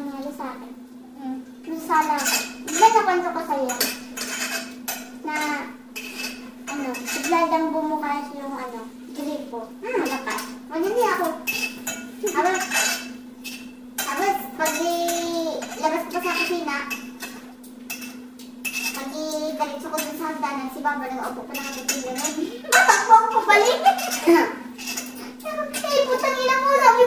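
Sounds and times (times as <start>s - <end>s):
steady low hum: 0.0s - 27.0s
women talking: 1.2s - 3.9s, 6.7s - 11.5s, 12.2s - 12.8s, 14.0s - 17.0s, 19.0s - 24.7s, 25.4s - 27.0s
cutlery clinking on plates: 2.2s - 3.0s, 3.7s - 5.1s, 11.5s - 19.0s, 21.5s - 26.0s.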